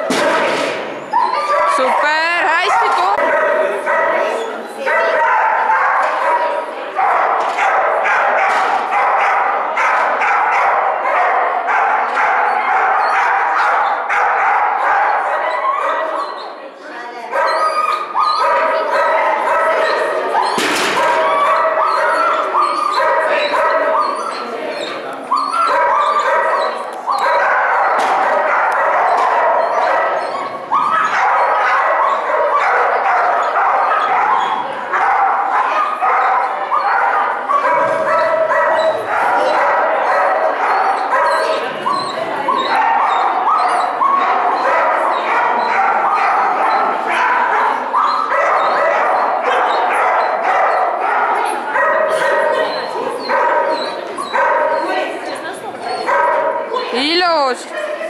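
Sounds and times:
dogs barking and yipping: 0:00.8 - 0:16.6, 0:17.3 - 0:58.0.

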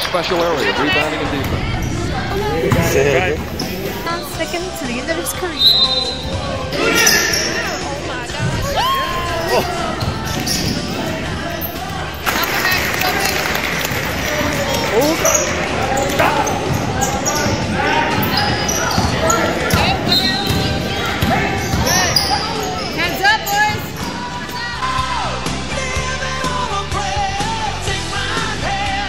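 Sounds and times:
voices of players and spectators: 0:00.0 - 0:29.0
sneakers squeaking: 0:00.6 - 0:24.9.

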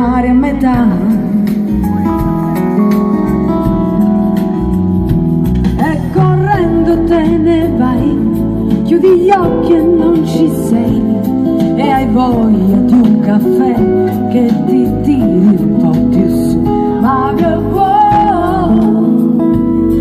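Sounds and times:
woman singing: 0:00.0 - 0:01.8, 0:05.8 - 0:20.0
live band playing: 0:00.0 - 0:20.0.

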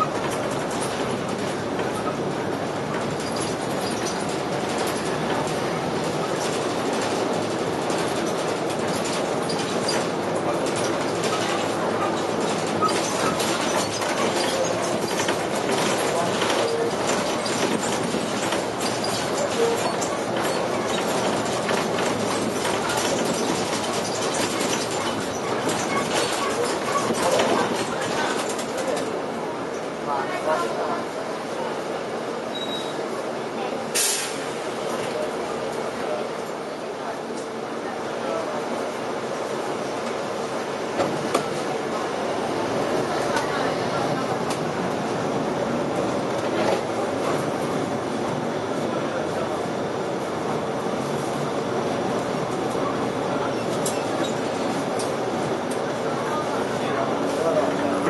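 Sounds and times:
bus engine running: 0:00.0 - 0:32.5, 0:33.1 - 0:58.0
rattles and clicks from bus body: 0:00.0 - 0:58.0
road noise: 0:00.0 - 0:58.0.

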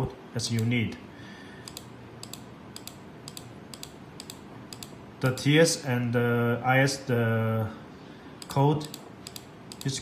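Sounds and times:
laptop keys clicking: 0:01.6 - 0:05.0, 0:08.4 - 0:10.0.

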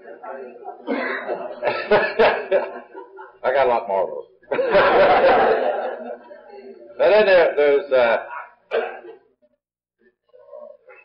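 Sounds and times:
person coughing: 0:08.3 - 0:09.3.

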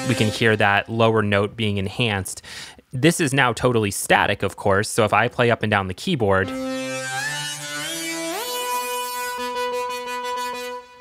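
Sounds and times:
synth lead sliding up: 0:06.4 - 0:11.0.

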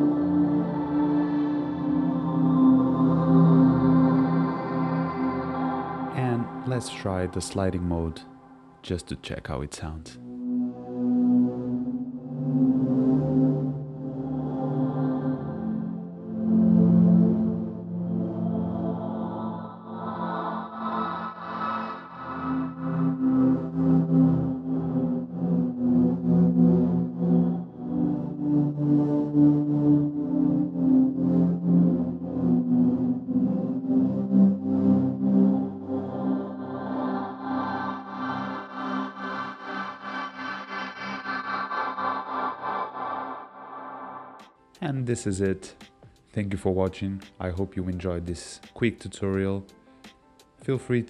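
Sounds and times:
synthesizer pad chords: 0:00.0 - 0:09.6, 0:10.2 - 0:46.0.

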